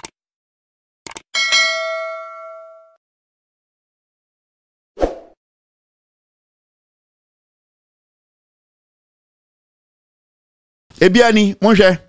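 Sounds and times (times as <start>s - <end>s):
bright bell ding: 1.4s - 3.0s.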